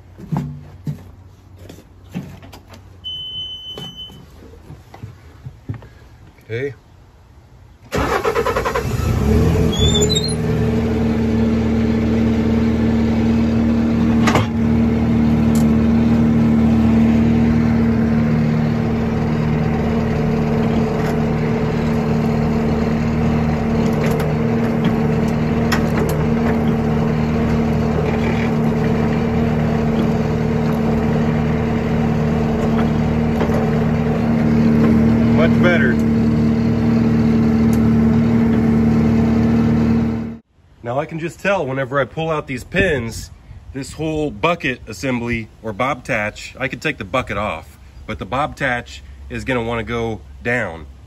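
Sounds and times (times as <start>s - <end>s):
engine cranking and running: 7.9s - 40.4s.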